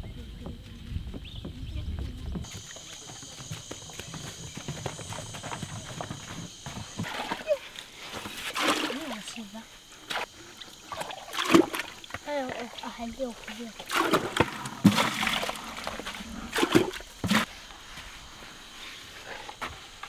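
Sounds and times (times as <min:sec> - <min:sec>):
water sloshing and splashing: 0:06.7 - 0:17.5
ladle scooping water: 0:06.9 - 0:17.5.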